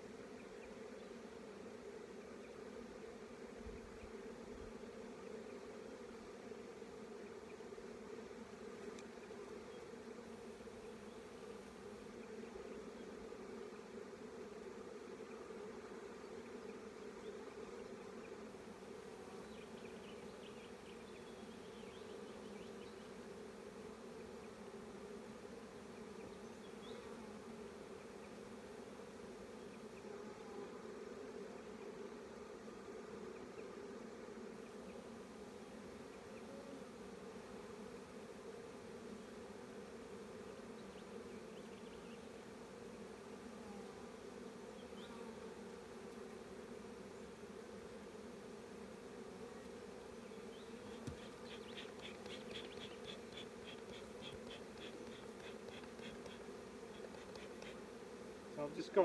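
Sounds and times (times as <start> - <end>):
bees buzzing: 0.0 - 59.0.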